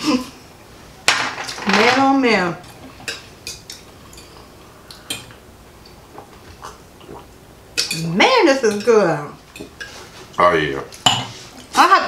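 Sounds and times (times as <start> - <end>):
cutlery clinking on glass plates: 11.0 - 11.4.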